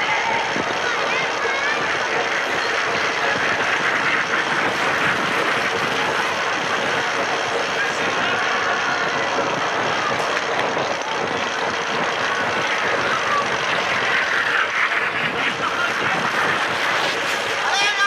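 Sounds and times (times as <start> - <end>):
crowd din: 0.0 - 18.0.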